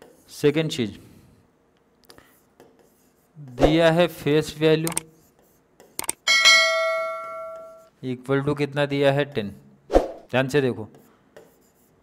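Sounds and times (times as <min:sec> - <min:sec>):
quick mouse clicks: 0:04.8 - 0:05.1, 0:06.0 - 0:06.2
bright bell chime: 0:06.3 - 0:07.9.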